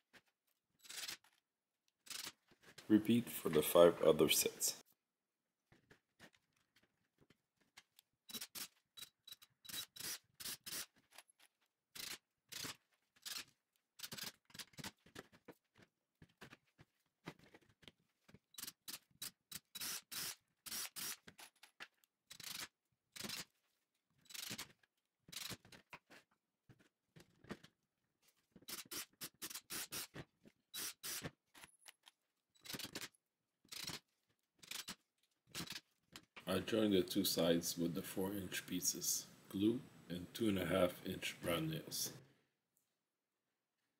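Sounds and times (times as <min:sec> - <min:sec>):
cordless drill driving screws: 0:18.6 - 0:21.3, 0:28.7 - 0:30.2, 0:30.8 - 0:31.4.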